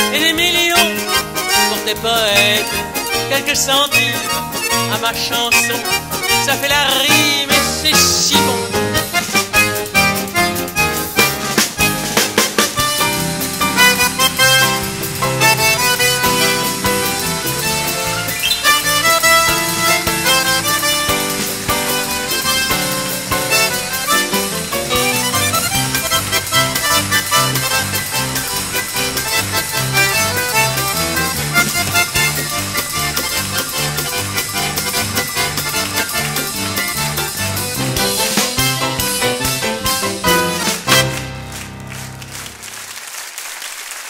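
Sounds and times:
bass line in even beats: 0.0s - 42.4s
instrumental band music: 0.0s - 43.1s.

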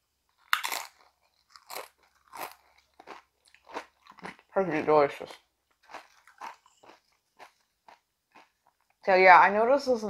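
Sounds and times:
chip crunching: 0.3s - 4.5s, 5.7s - 8.9s.

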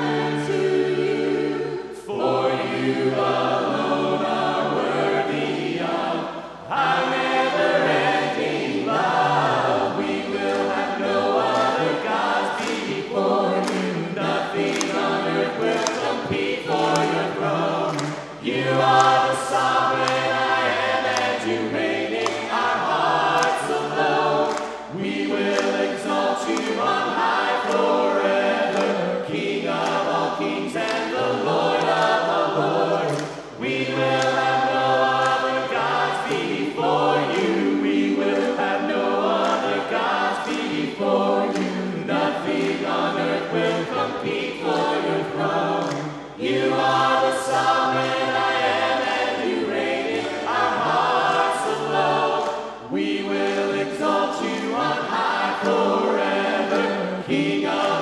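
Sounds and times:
group singing in harmony: 0.0s - 58.0s.

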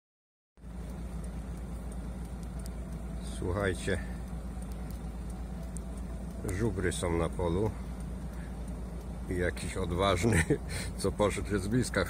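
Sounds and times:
van engine idling: 0.6s - 12.0s.

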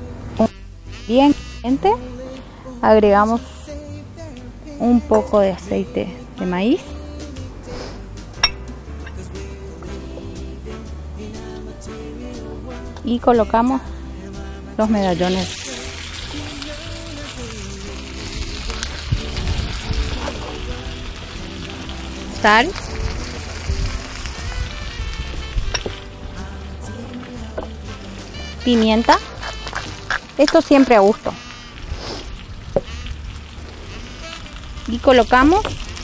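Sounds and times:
background music: 0.0s - 36.0s
meat sizzling in a frying pan: 15.0s - 26.7s, 27.3s - 36.0s.

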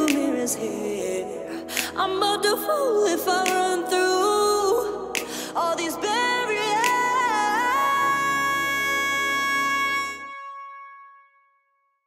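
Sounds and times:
synth pad: 0.0s - 10.6s.

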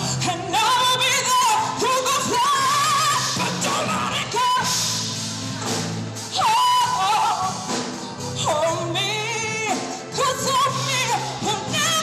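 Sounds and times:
woman singing with vibrato: 0.0s - 5.5s, 6.2s - 12.0s.

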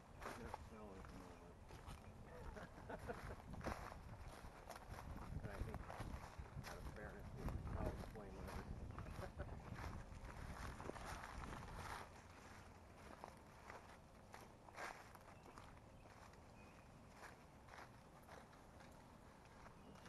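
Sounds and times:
footsteps through brush: 0.0s - 20.0s.

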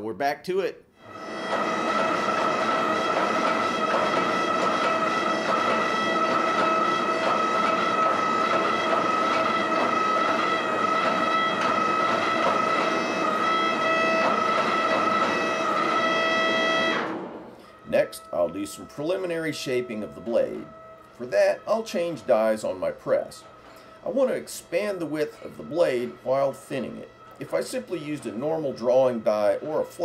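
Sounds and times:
noisy machine hum: 0.8s - 30.0s
hydraulic press whining: 1.0s - 30.0s.

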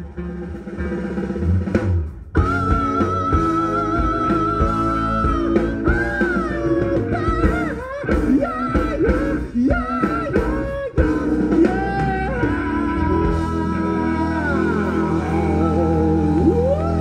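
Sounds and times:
bass: 0.0s - 17.0s
bending lead guitar line: 0.0s - 17.0s
drums: 0.0s - 17.0s.

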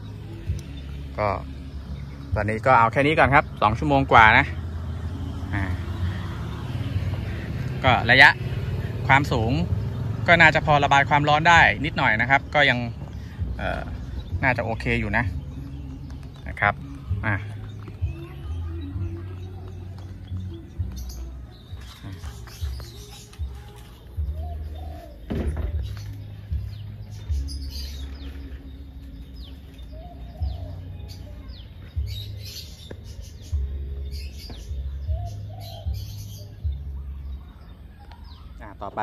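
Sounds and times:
bird calling: 0.0s - 39.0s.

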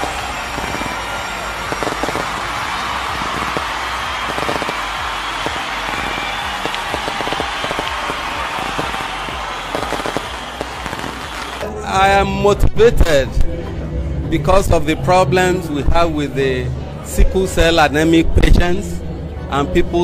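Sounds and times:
large crowd applauding: 0.0s - 11.6s.

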